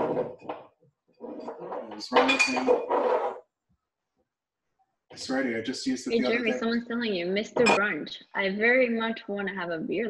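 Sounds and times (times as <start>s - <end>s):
person speaking: 1.2s - 3.4s, 5.2s - 10.0s
glass jars and bottles clinking: 2.1s - 3.0s, 7.5s - 7.8s.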